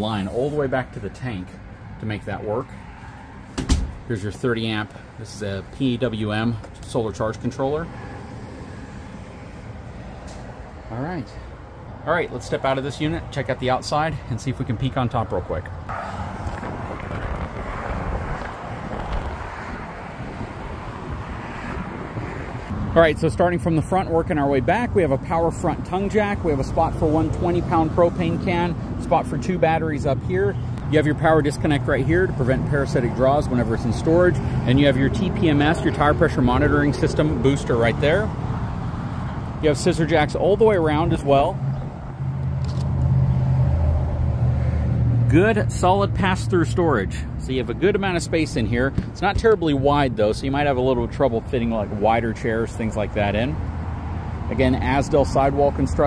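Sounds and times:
wind blowing across microphone: 16.2 - 23.0.

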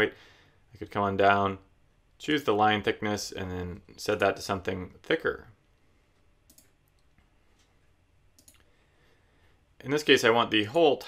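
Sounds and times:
computer mouse clicks: 6.4 - 7.7, 8.3 - 8.7.

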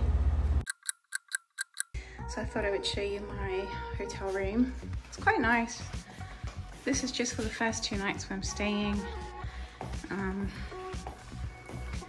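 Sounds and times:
sharp clock ticks: 0.6 - 2.0.

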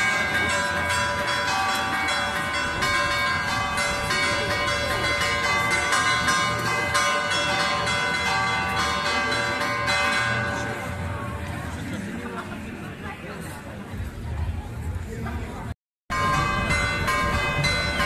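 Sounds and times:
church bells ringing a peal: 0.0 - 11.8, 16.1 - 18.0.

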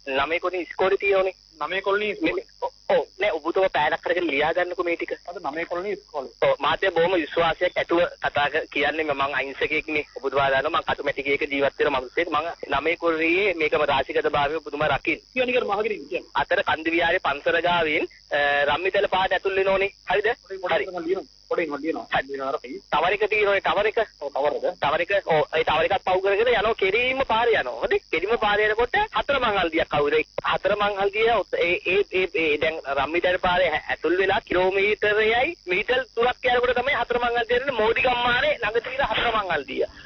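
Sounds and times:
person talking: 0.0 - 40.0
person talking on radio: 35.1 - 40.0.

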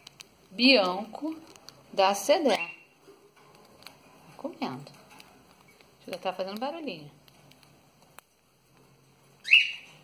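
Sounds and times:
cockatiel chirp rising in pitch: 9.4 - 9.9.

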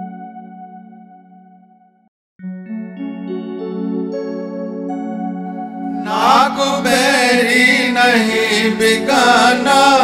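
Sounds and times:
man singing wordless melody: 6.0 - 10.0.

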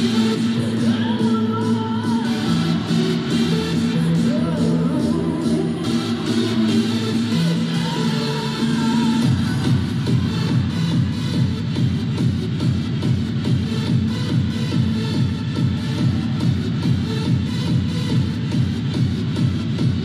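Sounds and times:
upbeat dance music: 0.0 - 20.0.

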